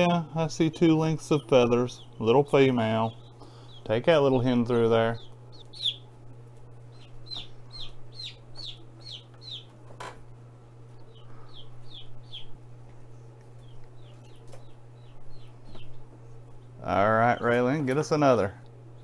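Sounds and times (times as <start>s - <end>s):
chicks peeping: 0.0s - 10.0s, 10.7s - 19.0s
low hum: 0.0s - 19.0s.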